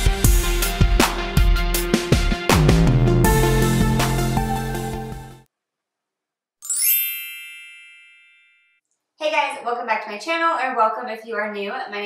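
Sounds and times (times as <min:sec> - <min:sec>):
bright ringing chime: 0:06.6 - 0:08.8.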